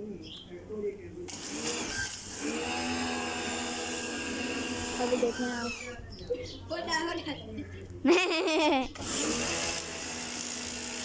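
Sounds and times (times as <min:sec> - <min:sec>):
pump motor humming: 0:01.3 - 0:06.0, 0:09.0 - 0:11.0.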